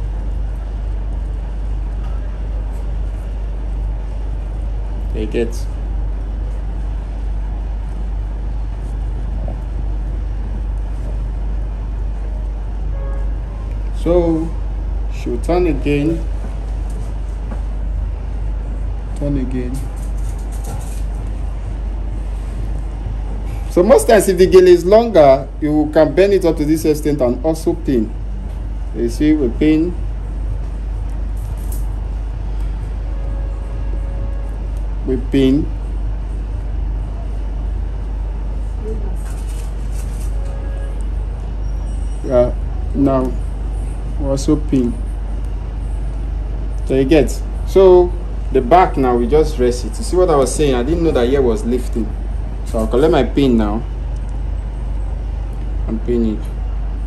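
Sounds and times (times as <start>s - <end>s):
background rumble and hiss: 0.0s - 57.0s
strong low hum: 0.0s - 57.0s.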